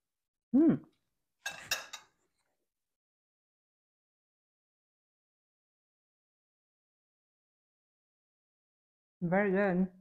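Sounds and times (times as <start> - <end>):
metal spoons clinking on ceramic bowl: 1.4 - 2.2.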